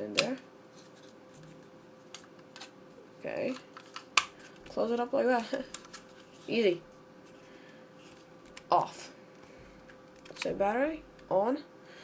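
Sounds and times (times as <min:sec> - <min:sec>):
plastic mouse handling: 0:03.5 - 0:06.6, 0:09.8 - 0:10.5.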